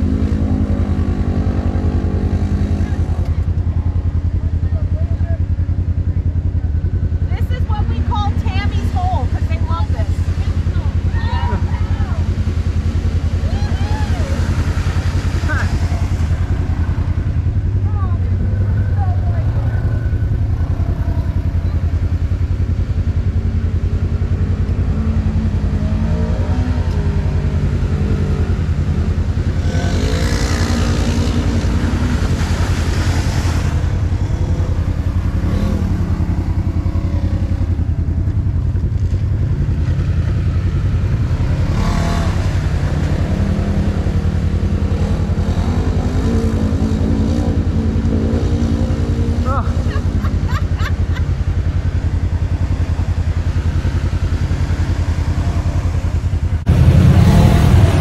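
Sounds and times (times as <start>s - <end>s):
engine idling and revving: 0.0s - 58.0s
rush of noise: 8.9s - 58.0s.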